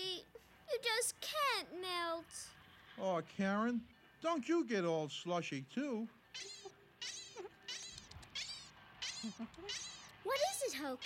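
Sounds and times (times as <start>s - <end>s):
cartoon rabbit squeaking: 6.3s - 11.0s.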